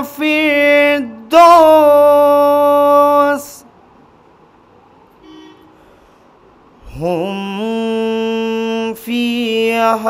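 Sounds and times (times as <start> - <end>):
distant vehicle horn toot: 5.2 - 6.0.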